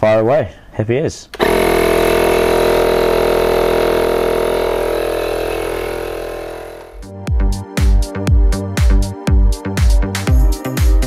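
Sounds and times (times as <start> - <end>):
tyre inflator compressor running: 1.4 - 7.1.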